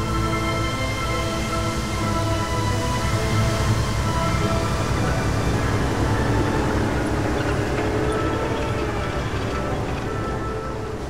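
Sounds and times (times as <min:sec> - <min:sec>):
background music: 0:00.0 - 0:11.0
tracked vehicle rumbling: 0:00.0 - 0:11.0.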